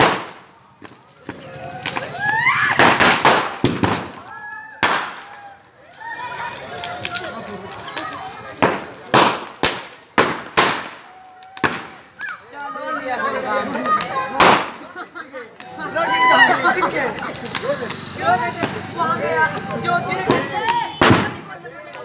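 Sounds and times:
firecrackers bursting: 0.0 - 22.0
people talking and calling out: 0.0 - 22.0.

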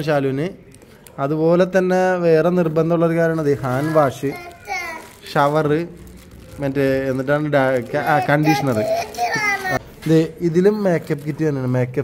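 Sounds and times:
child's high-pitched voice: 3.7 - 5.2, 7.9 - 9.8
people talking: 6.6 - 12.0.

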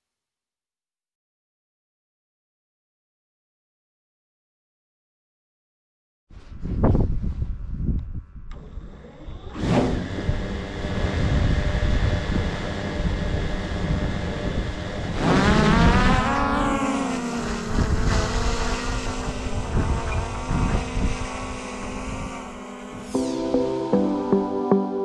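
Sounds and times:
wind rumble on microphone: 6.3 - 16.7, 17.4 - 23.1
drone propellers whining: 8.5 - 24.8.

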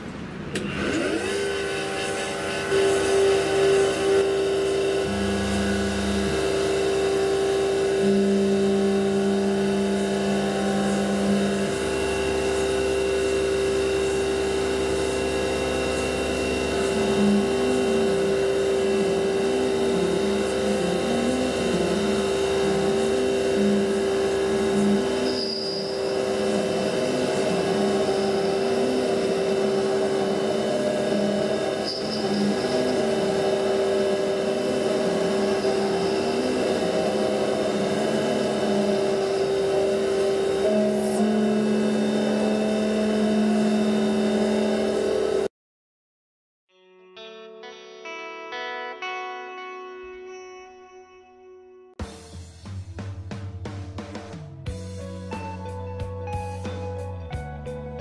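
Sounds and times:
mill spindle whining: 0.0 - 45.5
low tone shifting pitch: 2.1 - 45.5.

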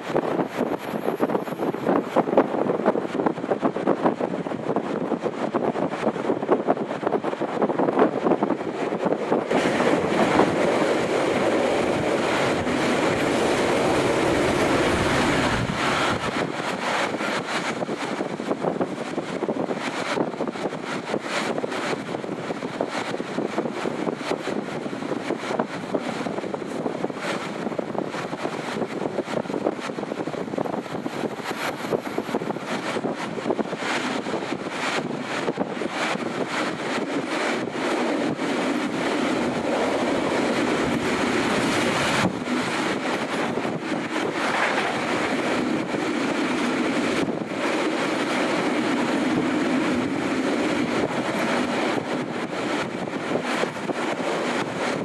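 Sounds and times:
train wheels rushing on rails: 0.0 - 55.0
wind: 0.0 - 55.0.

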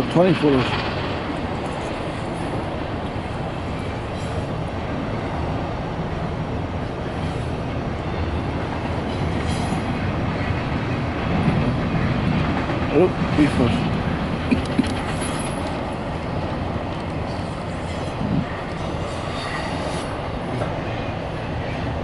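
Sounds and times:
train wheels rolling on rails: 0.0 - 22.0.

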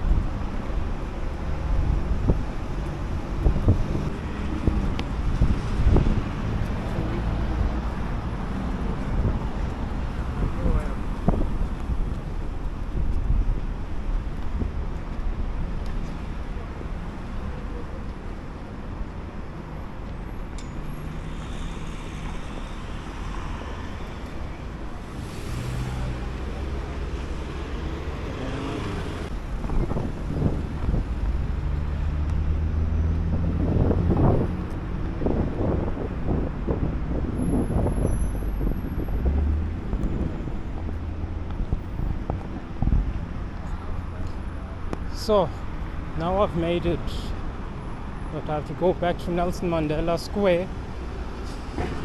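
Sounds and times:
cars driving past: 0.0 - 52.0.

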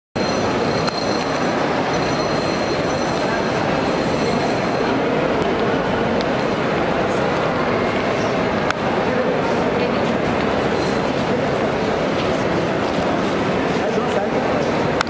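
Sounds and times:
busy airport hall din: 0.2 - 15.0.

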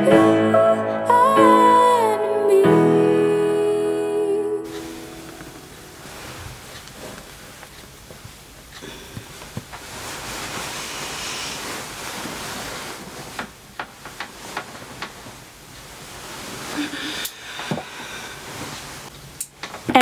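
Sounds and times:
bedding rustling: 4.7 - 20.0.

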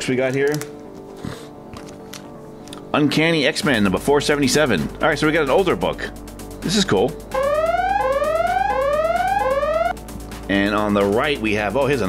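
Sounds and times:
rising electronic tone sweeps: 7.3 - 10.0.

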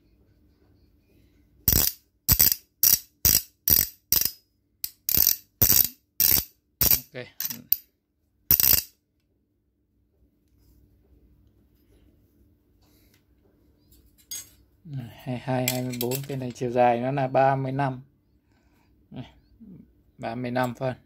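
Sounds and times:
ratchet wrench clicking: 1.7 - 7.8, 8.5 - 9.0.

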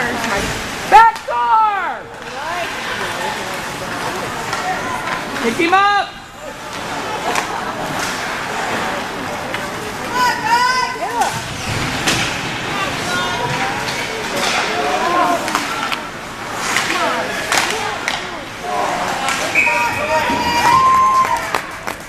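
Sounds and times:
hockey sticks and puck clacking: 2.1 - 22.0
spectators shouting: 17.0 - 21.8.

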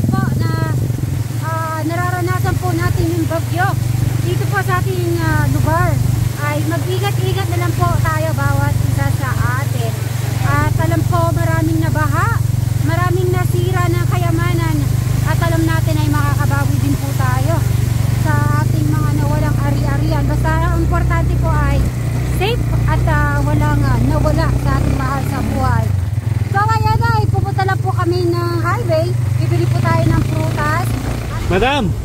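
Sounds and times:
motorcycle engine running: 0.0 - 32.0.

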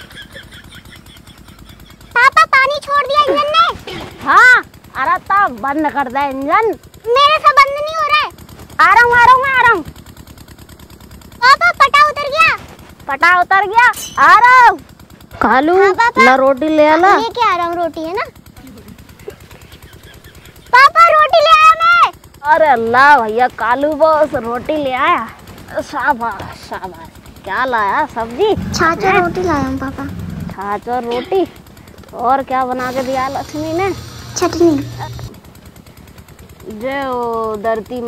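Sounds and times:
water pump engine running: 0.0 - 38.0
person speaking: 22.7 - 31.6.

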